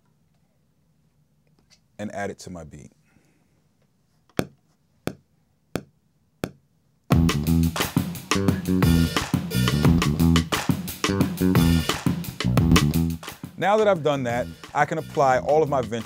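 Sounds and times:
drum beat with heavy bassline: 0:07.1 - 0:16.0.

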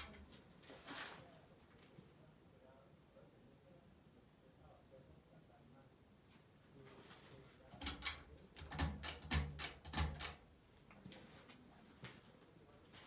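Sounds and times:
ceiling fan clicks and rattles: 0:07.6 - 0:11.1.

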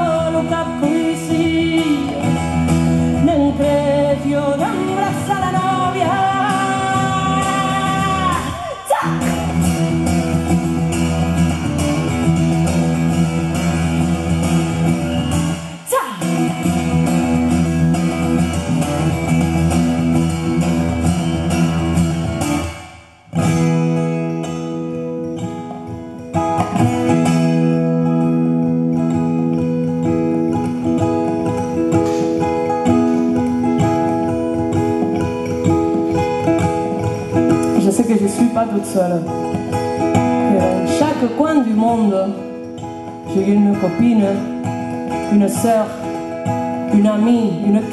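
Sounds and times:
person singing: 0:00.0 - 0:09.8, 0:15.8 - 0:17.0, 0:36.0 - 0:47.9
acoustic guitar strumming: 0:00.0 - 0:47.9.

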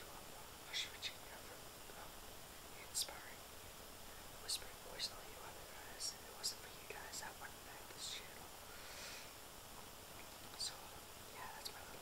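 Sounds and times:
man whispering: 0:00.0 - 0:03.4, 0:04.4 - 0:08.6, 0:10.4 - 0:12.0.

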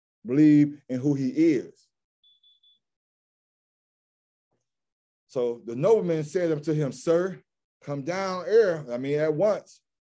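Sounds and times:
faint thin high tone: 0:02.2 - 0:02.9.

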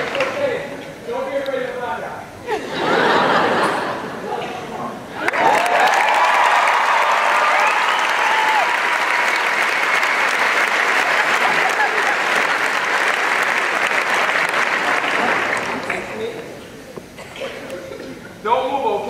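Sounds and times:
cheers and whoops: 0:05.2 - 0:09.5
large audience applauding: 0:05.2 - 0:16.4.

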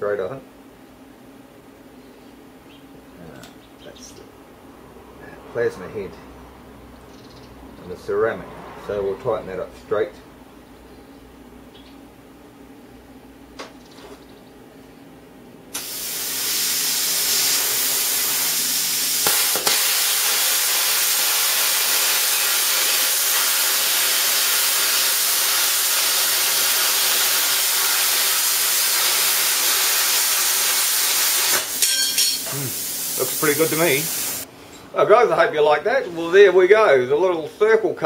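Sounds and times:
plasma cutter arc hissing: 0:15.7 - 0:34.5.

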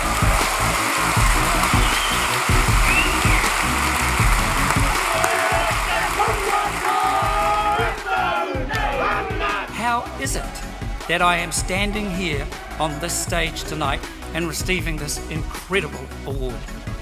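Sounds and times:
crowd clapping and cheering: 0:00.0 - 0:14.3
group of voices chanting: 0:05.0 - 0:13.2.

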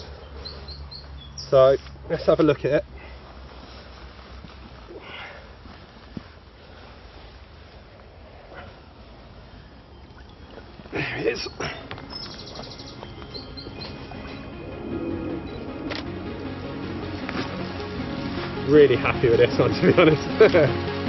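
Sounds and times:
birds chirping: 0:00.0 - 0:02.0, 0:08.4 - 0:21.0
rapid high bird trill: 0:10.3 - 0:17.1.

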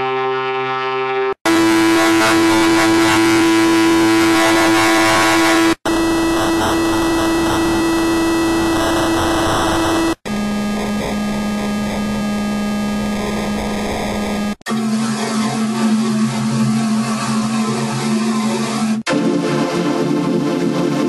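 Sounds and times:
harsh distorted noise: 0:01.4 - 0:19.1
steady droning tone: 0:01.5 - 0:19.0.

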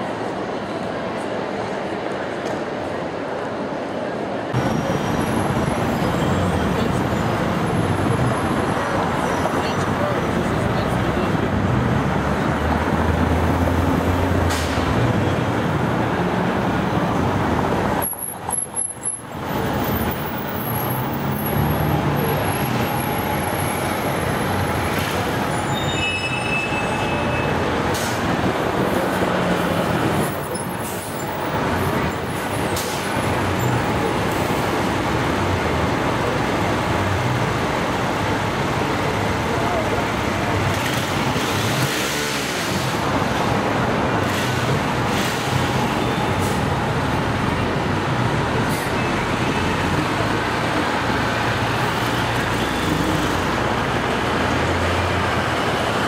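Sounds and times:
cars and buses passing: 0:00.0 - 0:56.0.

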